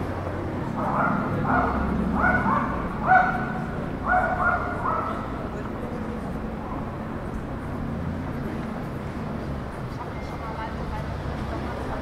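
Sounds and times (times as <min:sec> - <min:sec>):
low street background noise: 0:00.0 - 0:12.0
dog barking: 0:00.8 - 0:05.3.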